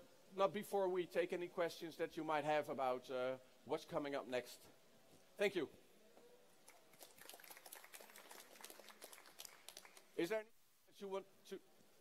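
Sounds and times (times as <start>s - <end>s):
small audience applauding: 6.6s - 10.2s.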